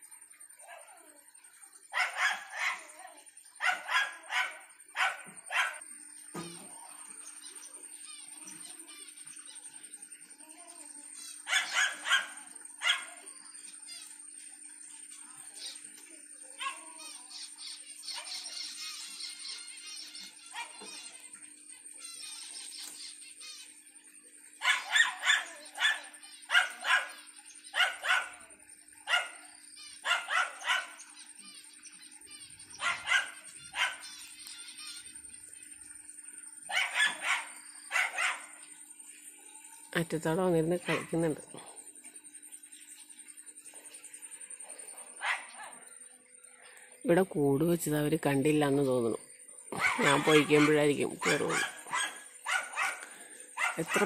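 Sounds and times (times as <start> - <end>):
finches twittering: 1.4 - 10.3, 11.0 - 54.0
dog barking: 1.9 - 3.0, 3.6 - 5.8, 11.5 - 13.2, 24.6 - 27.2, 27.8 - 28.4, 29.1 - 29.4, 30.0 - 31.0, 32.8 - 34.1, 36.7 - 38.6, 45.2 - 45.9, 49.8 - 54.0.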